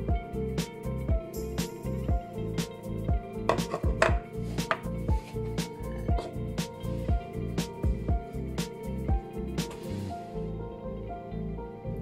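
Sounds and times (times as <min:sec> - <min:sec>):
background music with steady beat: 0:00.0 - 0:12.0
plastic pots knocking on tiles: 0:03.5 - 0:04.9.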